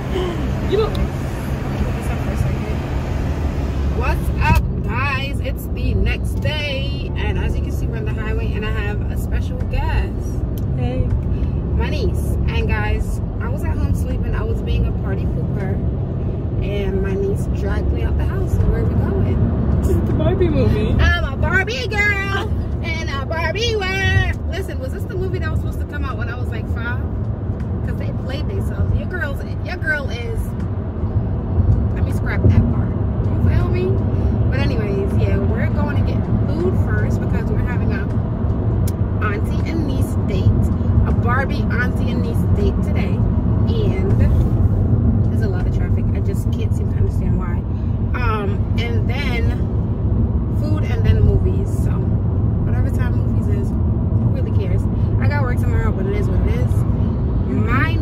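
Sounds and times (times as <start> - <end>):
car road and engine rumble: 0.0 - 58.0
people talking: 0.1 - 2.9, 4.0 - 11.0, 11.8 - 15.8, 16.6 - 27.0, 27.9 - 30.5, 32.0 - 38.2, 39.2 - 44.5, 45.3 - 47.6, 48.2 - 49.6, 50.6 - 56.8, 57.5 - 58.0.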